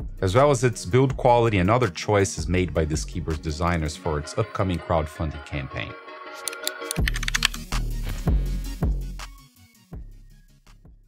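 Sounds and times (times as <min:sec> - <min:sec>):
intro music: 0:00.1 - 0:10.8
keyboard typing clicks: 0:06.4 - 0:07.7.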